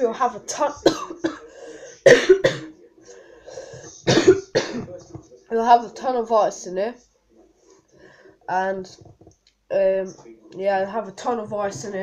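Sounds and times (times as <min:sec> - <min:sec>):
boy coughing: 0:00.8 - 0:02.7, 0:04.1 - 0:04.9
throat and breath sounds: 0:03.1 - 0:04.0.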